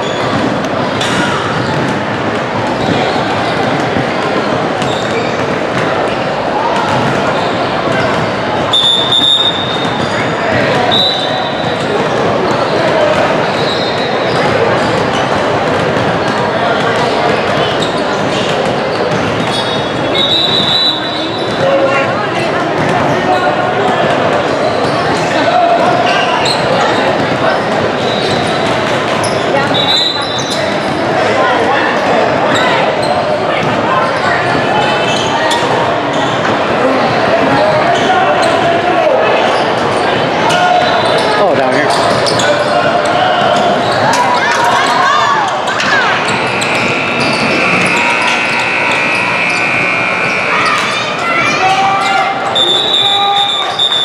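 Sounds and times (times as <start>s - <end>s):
voices talking echoing: 0.0s - 54.0s
basketballs bouncing on hardwood: 6.8s - 8.4s, 14.3s - 17.9s.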